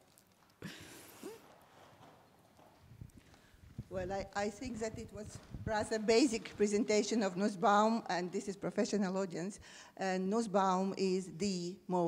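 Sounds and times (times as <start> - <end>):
soft footsteps: 0.0 - 8.9
person speaking: 3.9 - 11.8.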